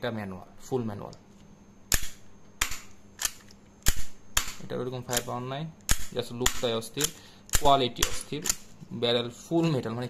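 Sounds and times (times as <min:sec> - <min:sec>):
metallic clicks of toy pistol action: 0:01.9 - 0:08.6.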